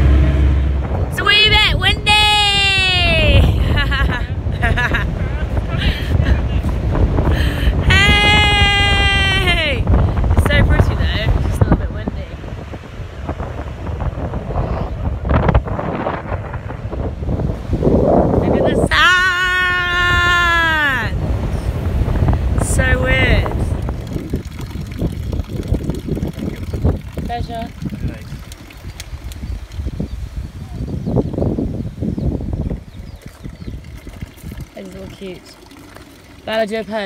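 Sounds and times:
wind buffeting microphone: 0.0s - 37.0s
person calling high note: 7.8s - 9.8s
woman's high-pitched held cry: 7.8s - 9.8s.

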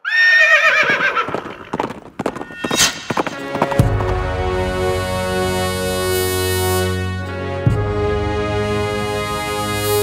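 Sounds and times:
clopping knocks: 1.8s - 4.2s
music: 3.0s - 10.0s.

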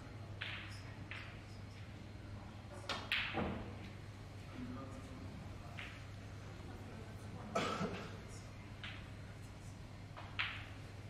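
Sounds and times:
faint steady hum: 0.0s - 11.0s
person coughing: 7.5s - 8.2s.

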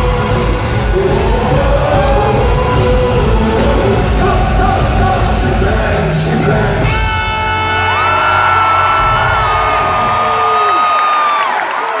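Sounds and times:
live pop-rock band: 0.0s - 10.7s
audience whooping and screaming: 7.6s - 12.0s.

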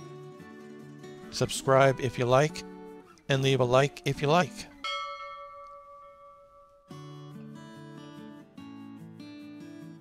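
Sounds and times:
strummed guitar music: 0.0s - 10.0s
bell-like chime ringing: 4.8s - 7.4s.

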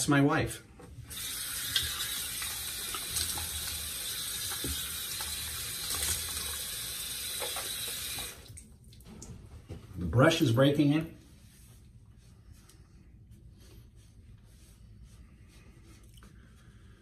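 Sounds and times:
water running from a tap: 1.1s - 8.7s.

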